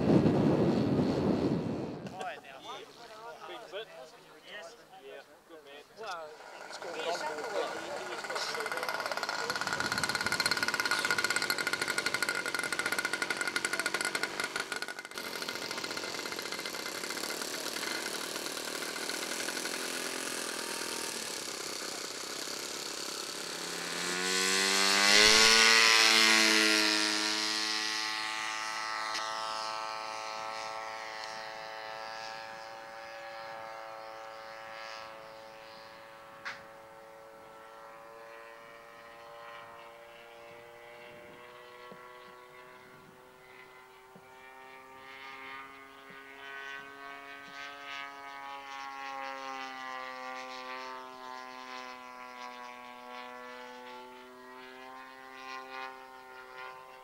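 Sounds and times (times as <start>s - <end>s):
model airplane engine: 0.0s - 3.8s, 4.5s - 57.0s.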